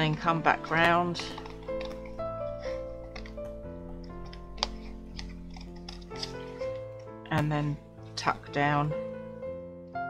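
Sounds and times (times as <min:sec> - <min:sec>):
background music with held notes: 0:00.0 - 0:10.0
scissors snipping card: 0:04.0 - 0:06.8.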